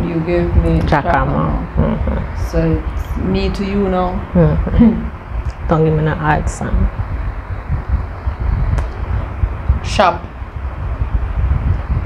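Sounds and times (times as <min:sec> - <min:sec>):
low uneven rumble: 0:00.0 - 0:12.0.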